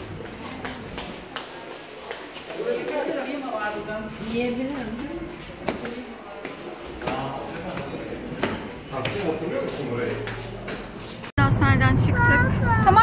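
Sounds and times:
footsteps on stairs: 0.0s - 11.3s.

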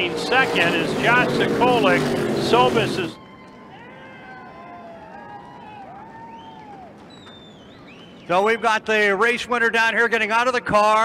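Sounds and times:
distant voices calling out: 0.0s - 3.2s.

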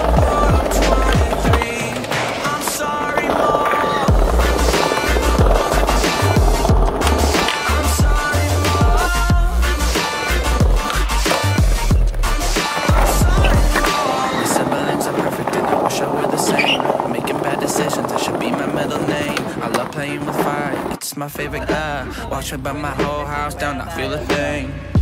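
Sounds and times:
song with heavy bass beat: 0.0s - 3.0s, 4.1s - 14.6s, 21.2s - 25.0s
skateboard wheels rolling on tiles: 0.0s - 24.6s.

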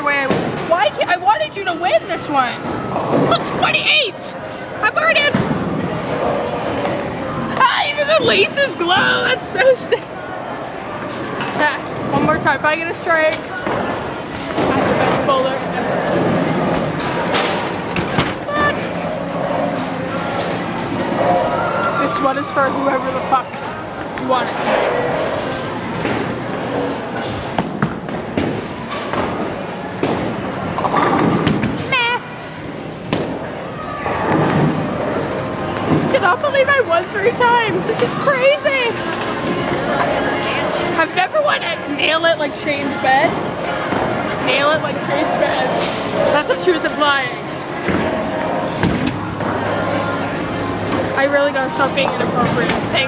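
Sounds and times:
bowling balls rolling: 11.1s - 38.3s.

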